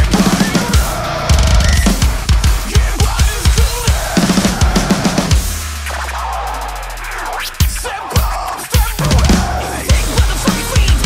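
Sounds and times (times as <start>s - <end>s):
kick drum strokes: 0.0s - 5.7s, 7.6s - 11.0s
backing track music: 0.0s - 11.0s
drum kit played hard: 0.0s - 11.0s.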